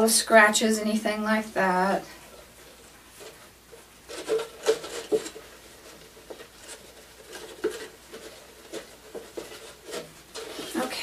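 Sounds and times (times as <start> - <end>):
plastic bottle crinkling: 4.0 - 11.0.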